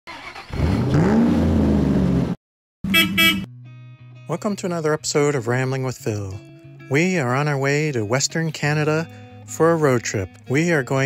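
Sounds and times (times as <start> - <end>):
car engine revving: 0.1 - 3.5.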